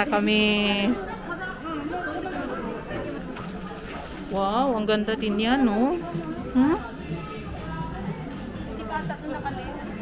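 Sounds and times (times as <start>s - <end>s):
shoppers chattering: 0.0s - 10.0s.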